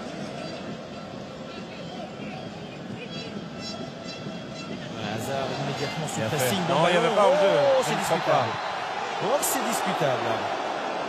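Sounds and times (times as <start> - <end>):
stadium crowd din: 0.0 - 11.0.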